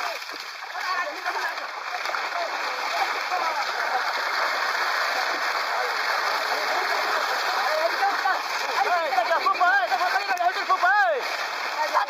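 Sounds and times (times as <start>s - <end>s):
fish splashing in water: 0.0s - 12.0s.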